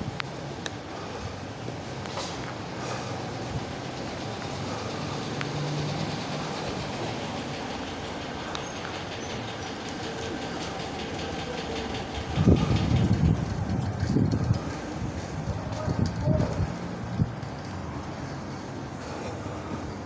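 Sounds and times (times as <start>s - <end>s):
rumble of vehicles: 0.0s - 20.0s
wind buffeting microphone: 2.8s - 5.1s, 11.8s - 18.3s.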